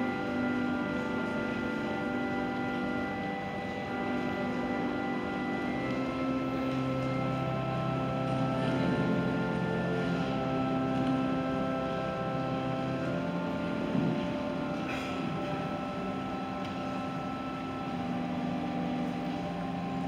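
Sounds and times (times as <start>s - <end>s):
slow organ music: 0.0s - 20.0s.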